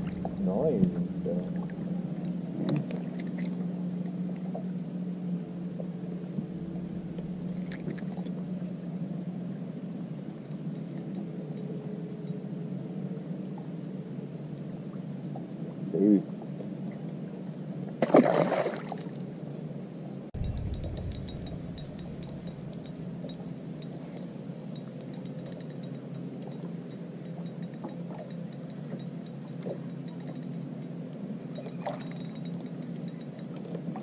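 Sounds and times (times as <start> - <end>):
brief deep rumble: 0.0 - 3.1, 20.4 - 23.4
water lapping against boat hull: 0.0 - 4.8, 5.7 - 8.7, 20.4 - 31.0, 31.6 - 34.0
steady low hum: 0.0 - 34.0
small clinks and ticks: 10.4 - 12.5, 20.4 - 34.0.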